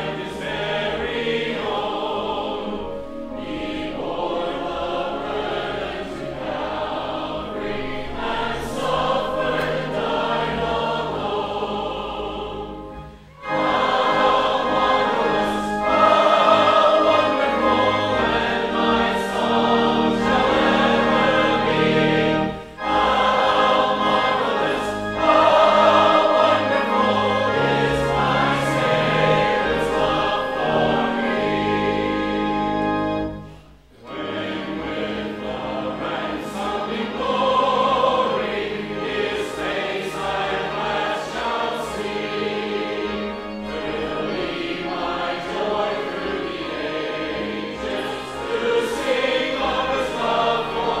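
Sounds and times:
congregation and choir singing hymn: 0:00.0 - 0:51.0
pipe organ: 0:00.0 - 0:51.0.

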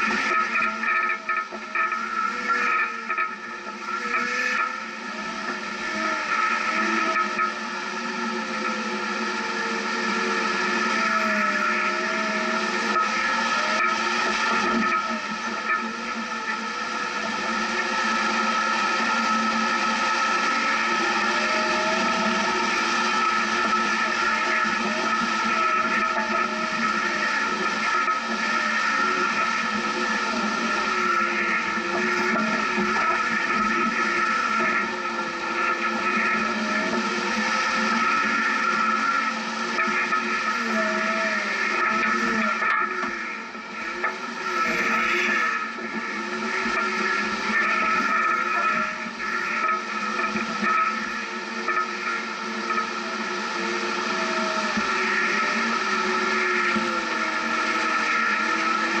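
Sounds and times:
off-road vehicle engine: 0:00.0 - 0:59.0.

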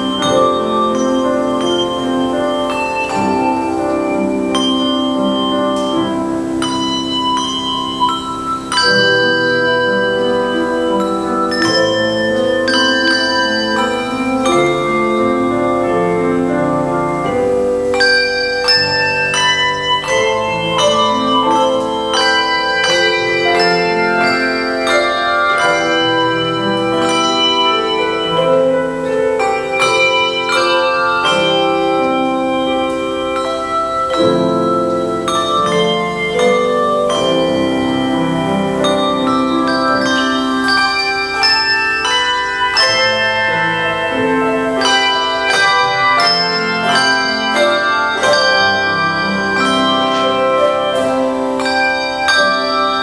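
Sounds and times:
handbell choir ringing chords: 0:00.0 - 0:53.0.

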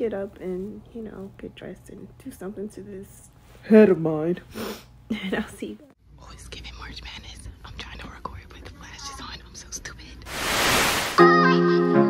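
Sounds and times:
faint whispering: 0:06.2 - 0:10.3
tv static hiss: 0:10.2 - 0:11.2.

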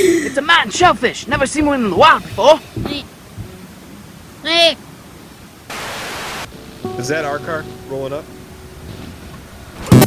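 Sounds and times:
static hiss burst: 0:01.2 - 0:07.1.

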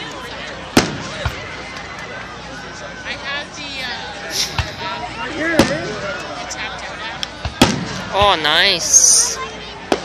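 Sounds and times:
background chatter: 0:00.0 - 0:10.0
firework bang: 0:07.5 - 0:08.1.

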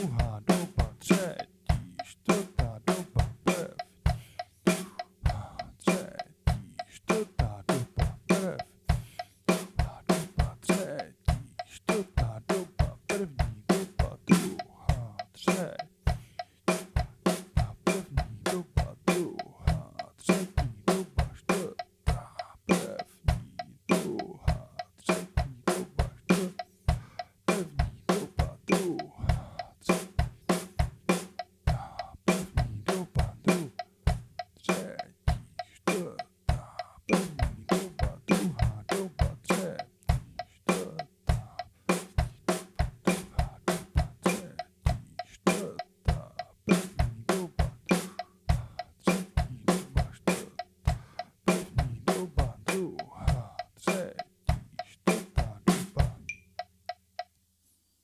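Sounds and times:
stick strokes on drums: 0:00.0 - 0:57.3.

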